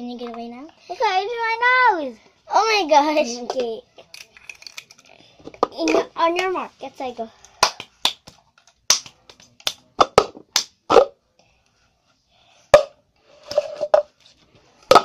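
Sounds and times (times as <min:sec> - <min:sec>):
hand claps: 0:07.6 - 0:09.9.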